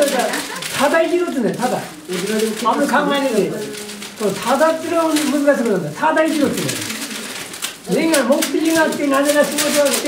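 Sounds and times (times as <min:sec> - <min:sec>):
man talking: 0:00.0 - 0:07.0, 0:07.8 - 0:10.0.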